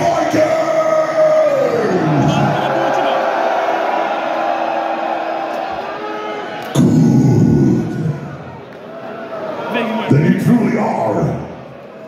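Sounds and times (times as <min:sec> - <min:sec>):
concert crowd noise: 0:00.0 - 0:12.0.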